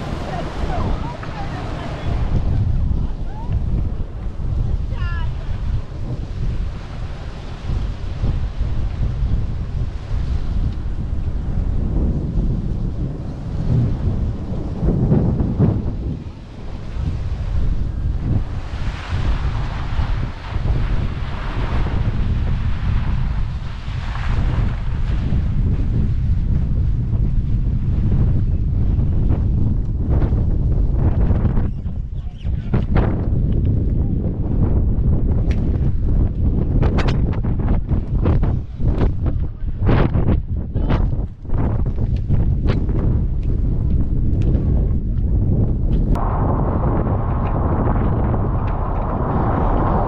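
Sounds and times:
wind buffeting microphone: 0.0s - 50.0s.

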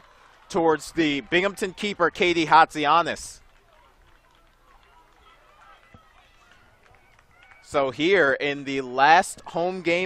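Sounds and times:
distant people shouting and talking: 0.0s - 10.0s.

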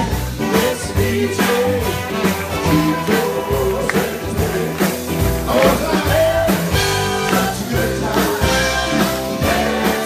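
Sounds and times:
live band music: 0.0s - 10.0s
steady drum beat: 0.0s - 10.0s
woman and man singing: 0.5s - 4.9s, 5.5s - 10.0s.

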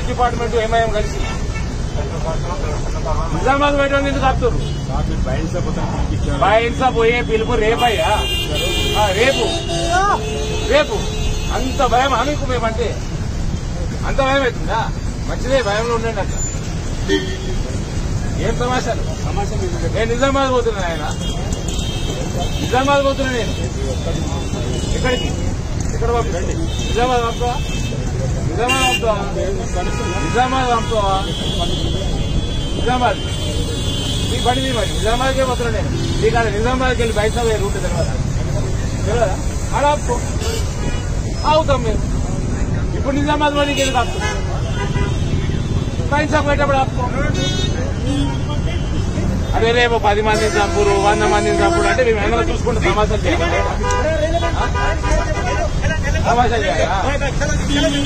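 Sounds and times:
men's voices: 0.0s - 58.0s
street traffic rumble: 0.0s - 58.0s
vehicles idling and moving: 0.0s - 58.0s
vehicle horn: 7.4s - 11.9s, 43.7s - 45.9s, 50.3s - 52.2s.

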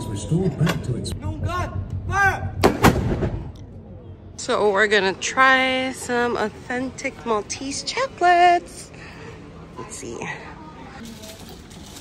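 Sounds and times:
cannon boom: 1.2s - 3.6s.

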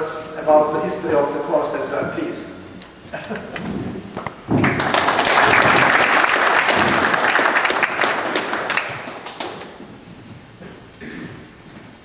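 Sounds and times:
audience applauding: 4.5s - 9.8s.

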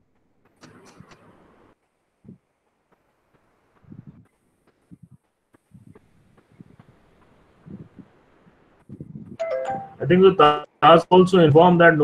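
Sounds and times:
two-note chime: 9.4s - 10.2s.

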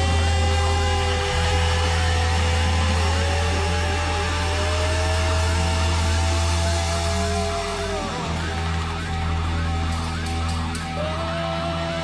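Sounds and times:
amplifier feedback tones: 0.0s - 12.0s
low bass rumble: 0.0s - 12.0s.

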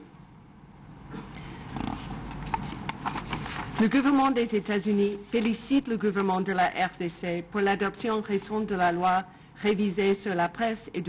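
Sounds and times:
rustling on microphone: 1.8s - 4.0s.

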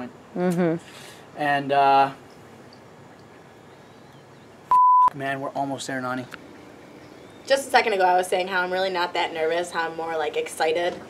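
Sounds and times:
censor bleep: 4.7s - 5.2s.

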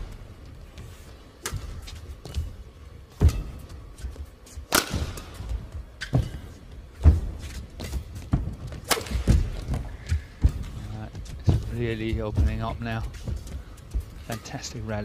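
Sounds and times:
footsteps thudding on court: 0.6s - 14.2s
rackets striking shuttlecock: 4.6s - 6.3s, 8.8s - 9.4s.

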